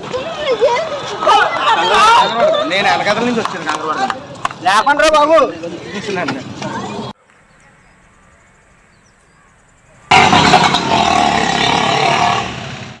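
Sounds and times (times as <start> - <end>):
motorcycle engine: 10.0 - 13.0.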